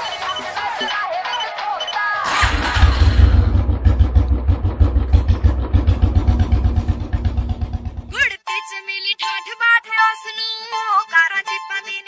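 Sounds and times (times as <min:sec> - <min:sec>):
motorcycle engine running: 0:02.3 - 0:08.2.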